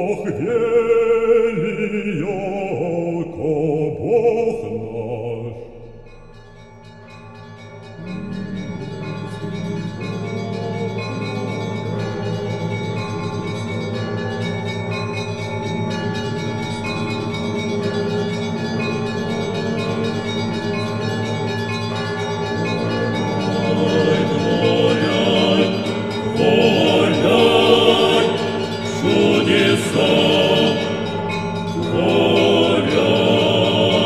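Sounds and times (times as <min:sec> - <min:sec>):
church bells pealing: 0:05.6 - 0:34.0.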